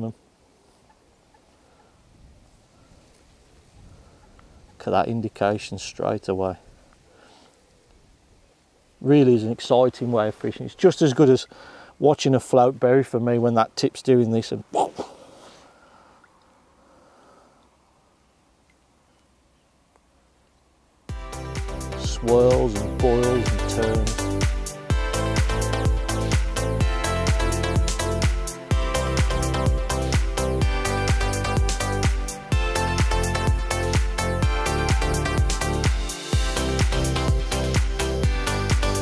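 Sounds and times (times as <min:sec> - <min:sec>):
quiet even hiss: 0:00.0 - 0:21.1.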